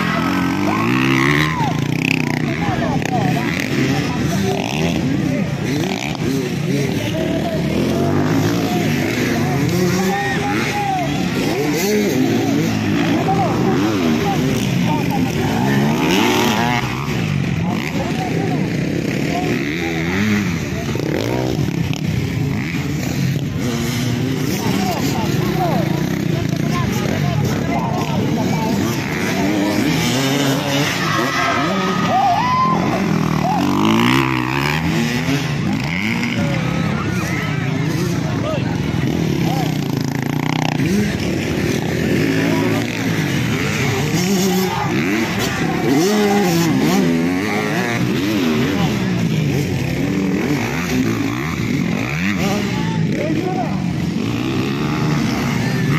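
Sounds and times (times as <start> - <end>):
crowd voices: 0.0 - 55.9
dirt bike engines revving: 0.0 - 55.9.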